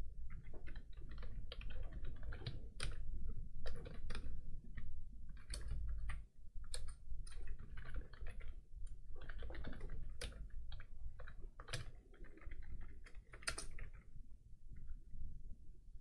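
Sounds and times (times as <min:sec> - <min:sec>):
typing on computer keyboard: 0:00.3 - 0:03.0, 0:03.6 - 0:08.6, 0:09.2 - 0:14.0.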